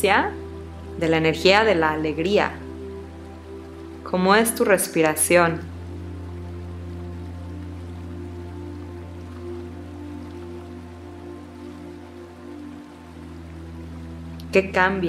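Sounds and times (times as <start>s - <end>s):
ambient drone music: 0.0s - 15.0s
faint steady hiss: 0.0s - 15.0s.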